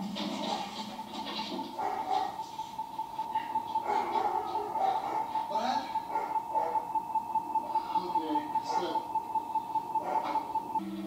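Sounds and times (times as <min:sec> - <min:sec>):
high ringing tone: 0:05.6 - 0:11.0.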